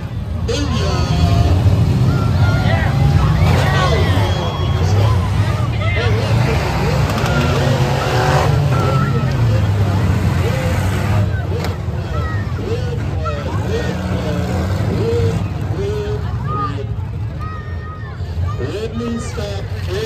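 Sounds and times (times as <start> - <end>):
car engines revving: 0.0 - 20.0
crowd shouting and cheering: 0.0 - 20.0.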